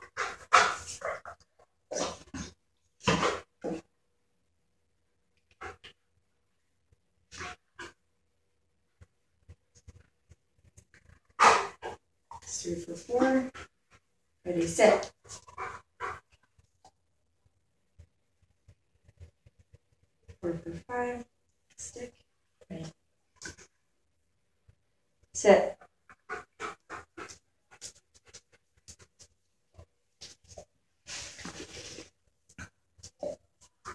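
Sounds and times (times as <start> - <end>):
dog panting: 0.0 - 1.3, 15.1 - 16.3, 25.7 - 29.3
rustling handling noise: 31.1 - 32.2.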